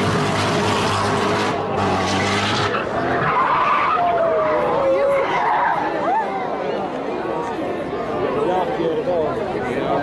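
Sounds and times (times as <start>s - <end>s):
car engine running loud: 0.0s - 3.4s
tyres skidding on road: 0.0s - 6.0s.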